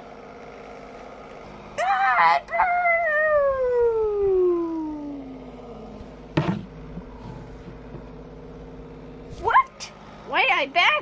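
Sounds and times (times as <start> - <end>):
child wailing: 1.8 - 5.6.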